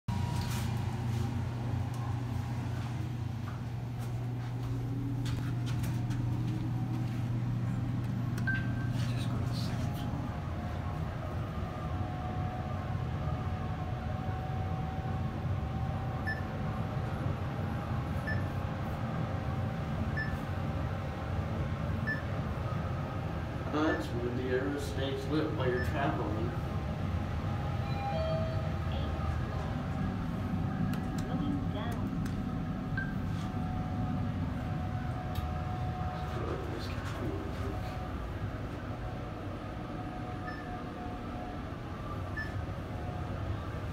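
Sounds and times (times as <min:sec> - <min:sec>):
elevator rumble with rising whine: 0:00.1 - 0:43.9.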